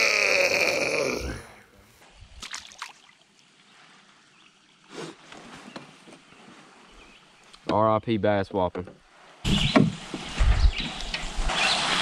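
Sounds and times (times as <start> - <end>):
faint splashes: 2.0 - 6.9.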